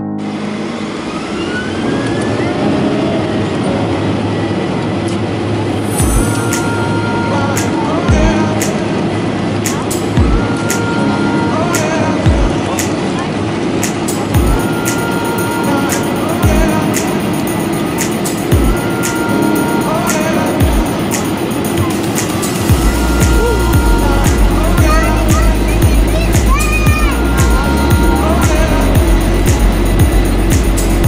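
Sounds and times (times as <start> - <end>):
aircraft engine hum and rush: 0.0 - 31.0.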